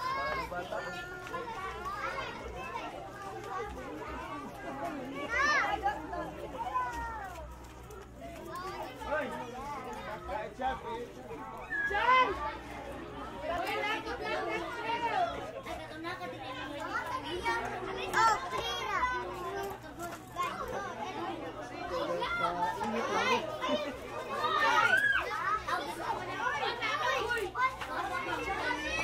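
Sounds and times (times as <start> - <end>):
children chattering: 0.0 - 29.0.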